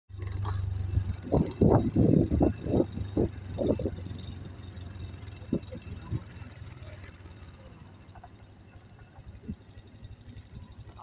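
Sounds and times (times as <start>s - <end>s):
scooter engine humming: 0.1s - 11.0s.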